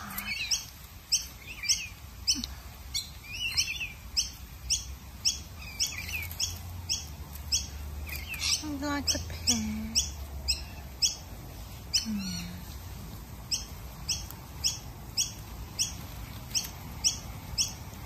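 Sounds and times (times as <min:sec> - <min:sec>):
bird chirping: 0:00.0 - 0:18.0
soft low murmur: 0:11.2 - 0:18.0.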